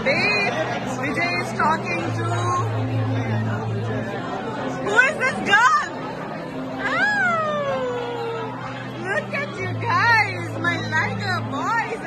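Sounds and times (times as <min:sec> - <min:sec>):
people's voices in a noisy room: 0:00.0 - 0:12.0
people calling out: 0:06.8 - 0:09.2.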